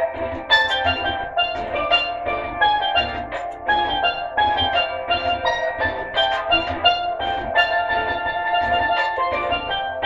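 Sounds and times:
low pulsing beat: 0.0 - 10.0
steel pan melody: 0.0 - 10.0.

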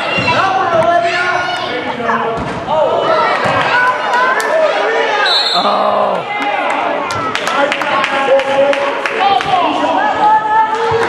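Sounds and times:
spectators shouting and chatting: 0.0 - 11.0.

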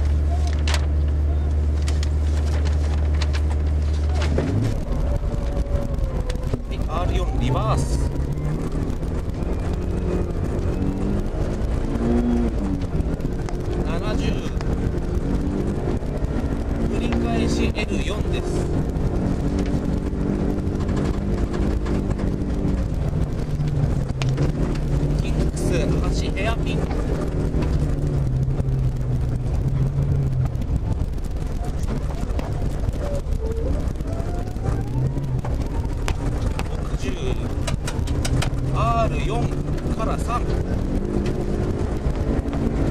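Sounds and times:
rally car engine revving: 0.0 - 42.9.

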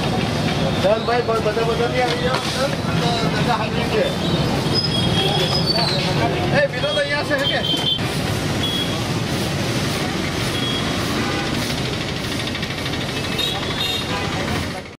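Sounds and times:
road traffic passing: 0.0 - 15.0
people talking: 0.8 - 4.2, 5.2 - 7.9, 13.1 - 15.0.

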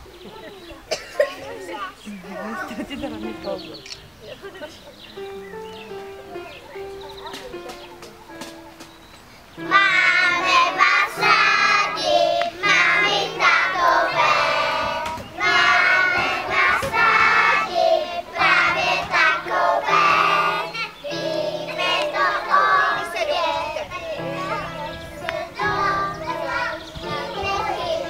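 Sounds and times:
instrumental accompaniment: 2.7 - 28.0
children singing: 9.6 - 28.0.

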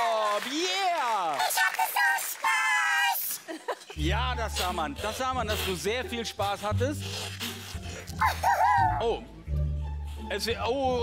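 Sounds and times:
background music with low bass: 4.0 - 11.0.

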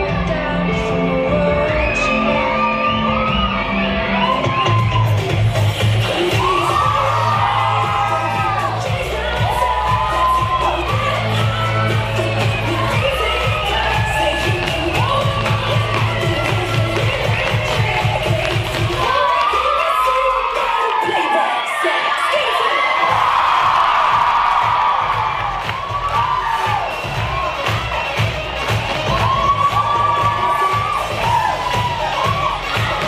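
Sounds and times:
audience cheering and shouting: 0.0 - 33.0
dance music with steady beat: 0.0 - 33.0.

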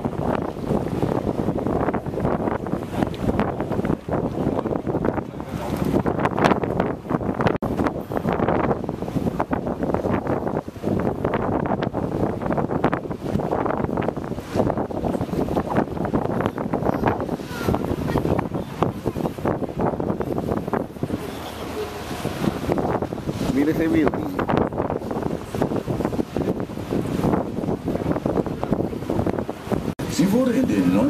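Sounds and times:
boat engine running: 0.0 - 31.0
wind buffeting microphone: 0.0 - 31.0.

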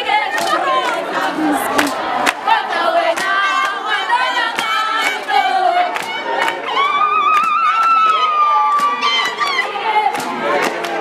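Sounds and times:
girls singing and shouting: 0.0 - 11.0
hand claps: 5.9 - 6.6, 10.1 - 11.0.

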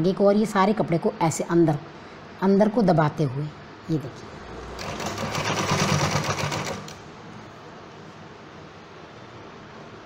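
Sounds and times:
industrial sewing machine stitching: 4.3 - 7.0.

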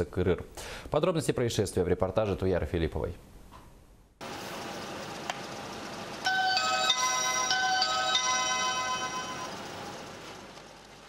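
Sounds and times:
electronic doorbell chime tune: 6.3 - 9.7.

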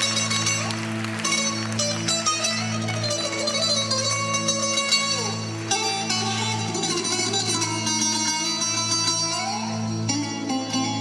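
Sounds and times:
plucked string instrument: 0.0 - 11.0.

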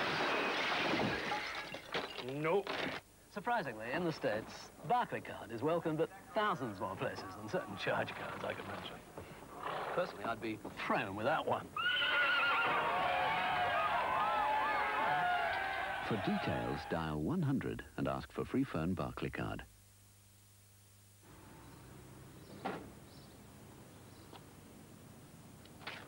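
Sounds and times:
falling glass: 0.0 - 3.0
glass window shattering: 0.0 - 3.0
horse whinnying: 9.6 - 10.2, 11.8 - 13.6.

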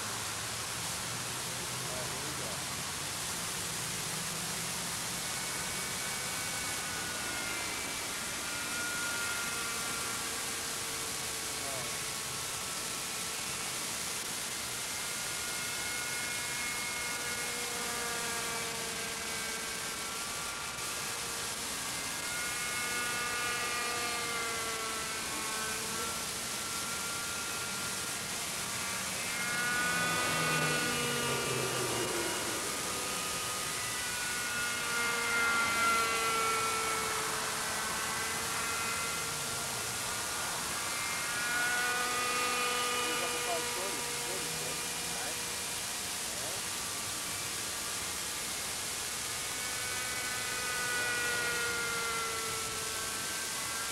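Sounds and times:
model helicopter engine and rotor whine: 0.0 - 53.9
steady hiss: 0.0 - 53.9.

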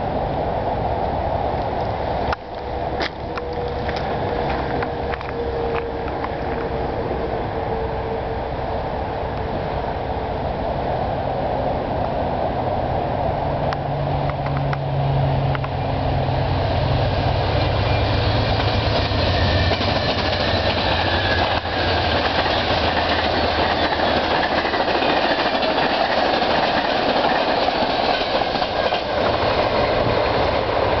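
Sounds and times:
diesel locomotive engine drone: 0.0 - 31.0
wheel and rail noise: 0.0 - 31.0.

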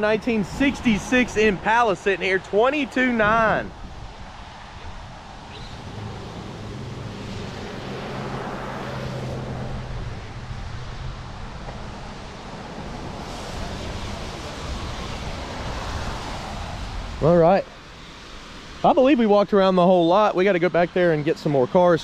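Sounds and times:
wind on microphone: 0.0 - 18.9
passing traffic hum: 0.0 - 22.0.

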